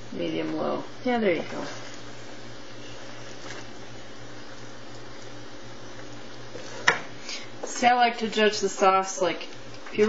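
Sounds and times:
sauce simmering with hiss: 0:00.0 - 0:10.0.

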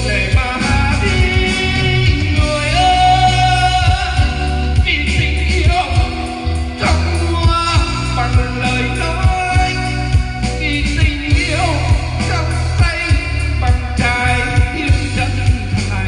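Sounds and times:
electric guitar: 0:00.0 - 0:16.0
keyboards: 0:00.0 - 0:16.0
man singing into a microphone: 0:00.0 - 0:16.0
steady bass beat: 0:00.0 - 0:16.0.

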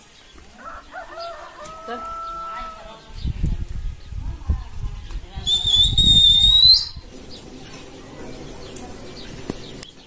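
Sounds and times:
rooster crowing: 0:00.6 - 0:03.0.

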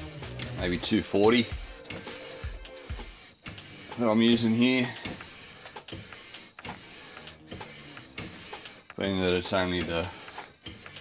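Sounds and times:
metal scraping on abrasive paper: 0:00.6 - 0:11.0.

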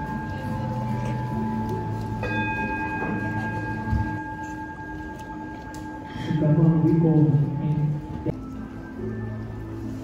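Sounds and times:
bell ringing: 0:00.0 - 0:07.0.

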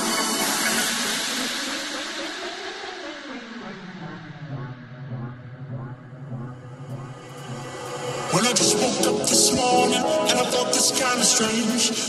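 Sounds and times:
tone gliding downward: 0:03.3 - 0:07.6.

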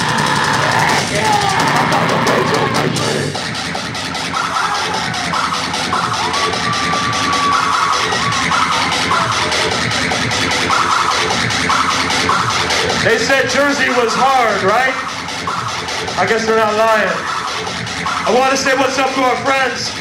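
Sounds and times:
fast dense drumming: 0:00.0 - 0:20.0
metal band playing live: 0:00.0 - 0:20.0.

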